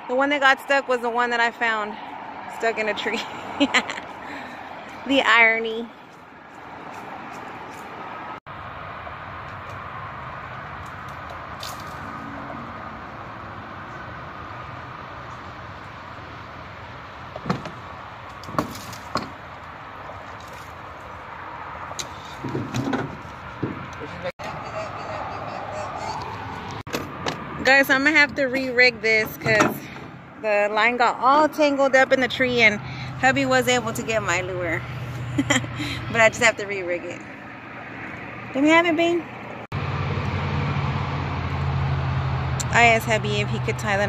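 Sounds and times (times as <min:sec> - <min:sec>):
branches and leaves rustling: 0:05.9 - 0:24.3
branches snapping and cracking: 0:10.7 - 0:12.2, 0:17.4 - 0:21.2.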